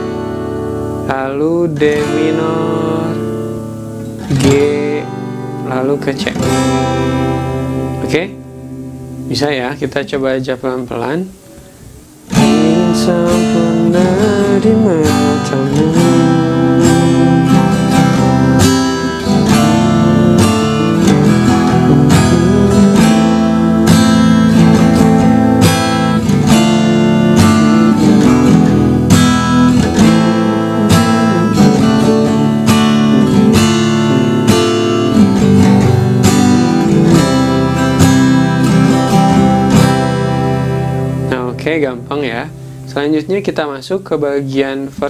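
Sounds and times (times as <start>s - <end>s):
acoustic guitar strumming: 0.0s - 45.0s.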